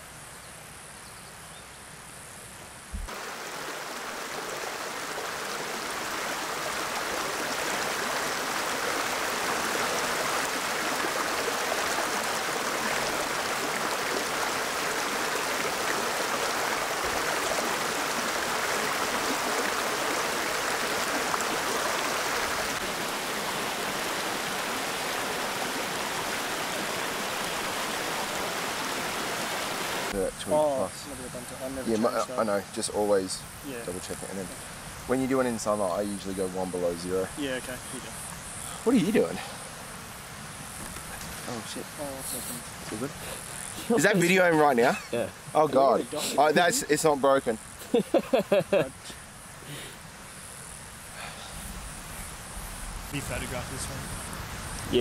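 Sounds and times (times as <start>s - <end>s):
water rushing over stones: 3.0s - 30.8s.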